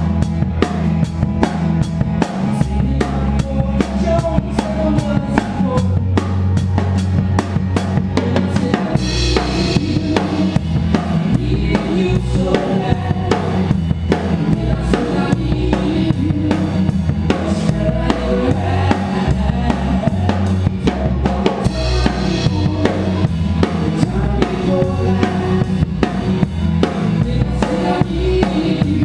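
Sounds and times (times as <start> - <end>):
bass notes: 0.0 - 29.0
drums and cymbals beat: 0.0 - 29.0
guitars: 0.0 - 29.0.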